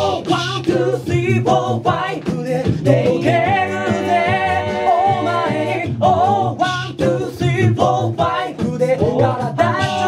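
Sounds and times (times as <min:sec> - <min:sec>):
male a cappella group singing: 0:00.0 - 0:10.0.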